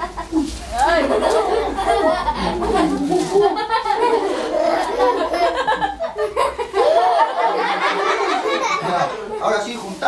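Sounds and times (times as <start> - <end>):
children laughing: 0.0 - 9.6
children talking: 0.0 - 9.6.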